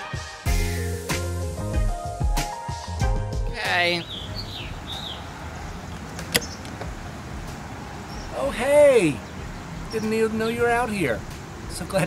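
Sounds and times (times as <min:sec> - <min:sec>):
sharp click: 0:06.2 - 0:06.9.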